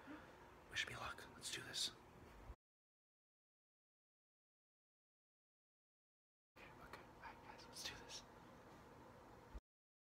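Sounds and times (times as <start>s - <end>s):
man whispering: 0.7s - 2.0s, 6.6s - 8.4s.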